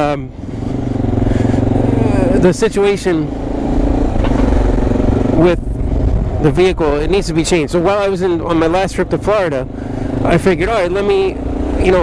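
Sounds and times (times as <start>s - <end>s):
low road rumble: 0.0s - 12.0s
motorcycle engine running: 0.0s - 12.0s.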